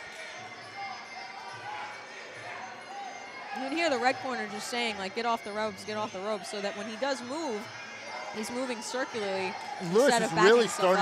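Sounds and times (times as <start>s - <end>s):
venue background noise: 0.0s - 11.0s.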